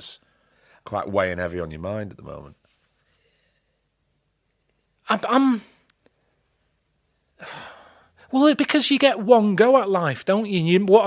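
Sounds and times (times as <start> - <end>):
man sighing: 7.4 - 8.1.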